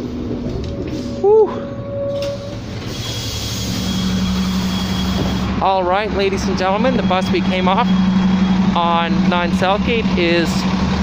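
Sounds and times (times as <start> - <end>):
diesel bus engine rumbling: 0.0 - 11.0.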